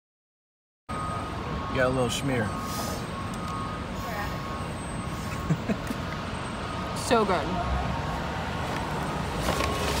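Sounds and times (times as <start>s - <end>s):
distant traffic rumble: 0.9s - 10.0s.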